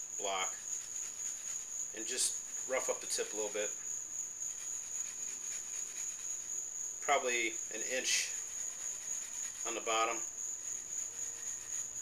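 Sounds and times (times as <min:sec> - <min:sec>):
cricket trilling: 0:00.0 - 0:12.0.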